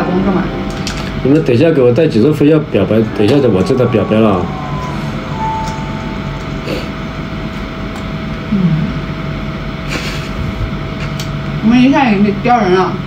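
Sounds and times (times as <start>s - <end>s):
background hiss and hum: 0.0s - 13.0s.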